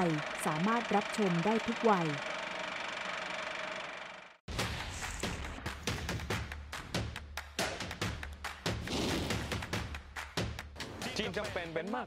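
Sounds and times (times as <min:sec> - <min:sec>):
announcer speaking: 0:00.0 - 0:02.3.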